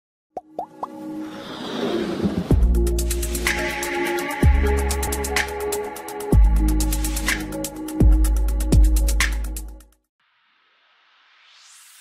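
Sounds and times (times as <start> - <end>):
music: 0.4 - 10.1
whoosh: 1.2 - 2.8.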